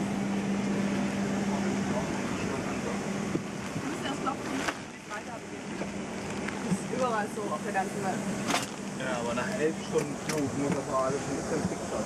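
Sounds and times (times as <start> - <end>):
muffled passenger voices: 0.4 - 12.0.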